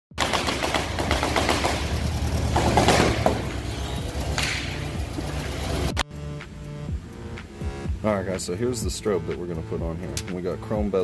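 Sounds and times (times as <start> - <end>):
fast clicks and rattles: 0.2 - 6.0.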